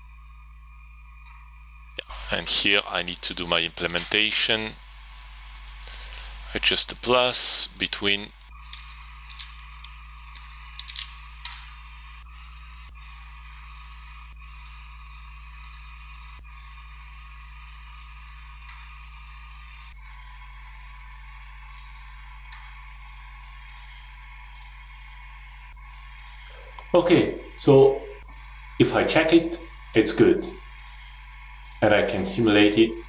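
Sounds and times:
electrical hum and hiss: 0:00.0 - 0:33.0
computer mouse clicks: 0:08.6 - 0:11.7, 0:18.0 - 0:18.8, 0:21.7 - 0:22.7, 0:23.6 - 0:24.8, 0:26.1 - 0:26.9, 0:30.8 - 0:31.0.

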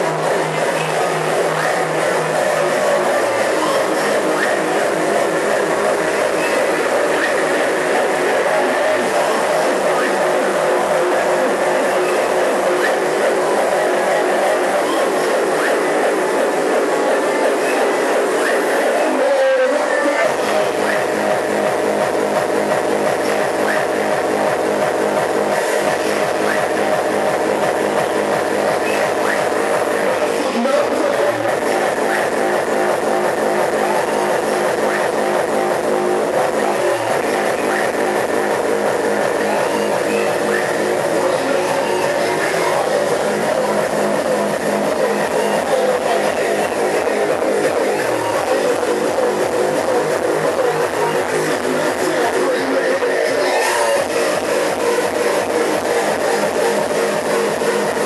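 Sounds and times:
hard techno music: 0:00.0 - 0:58.0.

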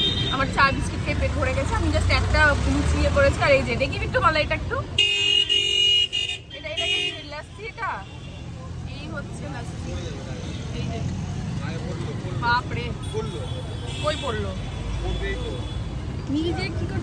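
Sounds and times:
low rumble of engines: 0:00.0 - 0:17.0
vehicle horn: 0:05.0 - 0:07.3.

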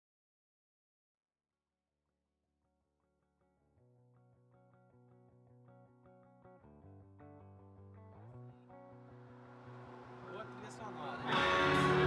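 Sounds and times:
picked guitar notes: 0:08.0 - 0:12.0
rock band playing: 0:11.0 - 0:12.0
person singing: 0:11.2 - 0:12.0.

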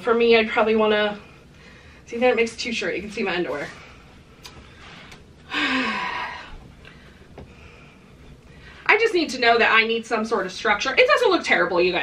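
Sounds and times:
woman sighing: 0:05.5 - 0:06.6.

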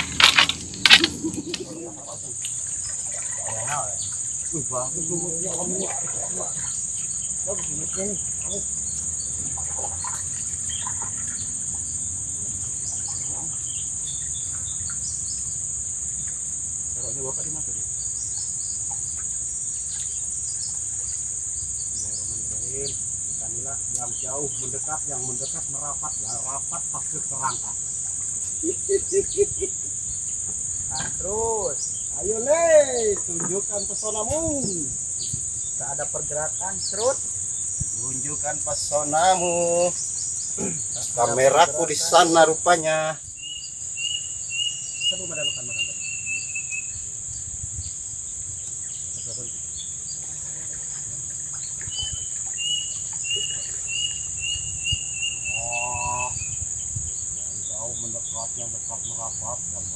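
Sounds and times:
insects buzzing: 0:00.0 - 0:59.9.

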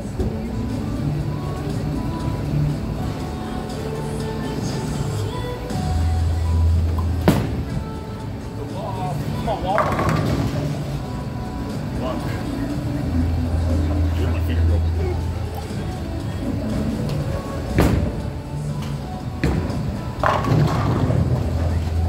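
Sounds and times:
background music: 0:00.0 - 0:22.0
voices: 0:00.0 - 0:22.0
bowling ball rolling: 0:00.2 - 0:14.2, 0:14.8 - 0:22.0
ball crashing into pins: 0:09.8 - 0:10.7, 0:19.4 - 0:21.5.

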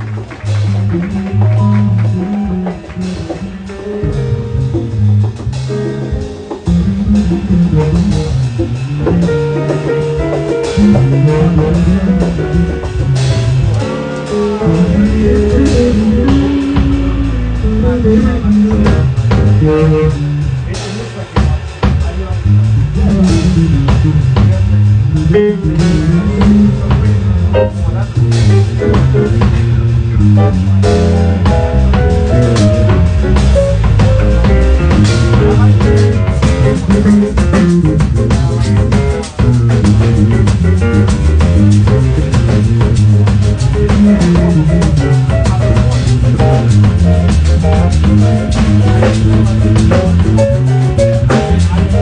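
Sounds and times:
conga drums: 0:00.0 - 0:52.0
drum kit: 0:00.0 - 0:52.0
electric bass guitar: 0:00.0 - 0:52.0.

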